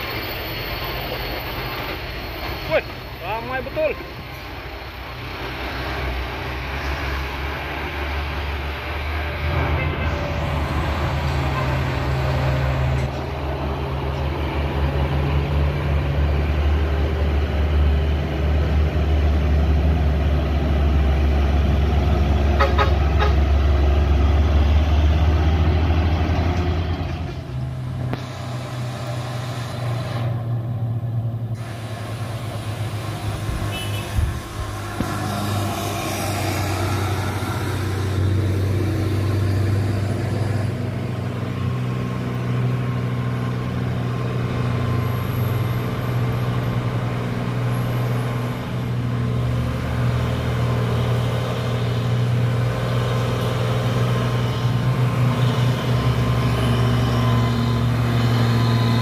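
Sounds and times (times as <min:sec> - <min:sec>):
trucks driving past: 0:00.0 - 0:59.0.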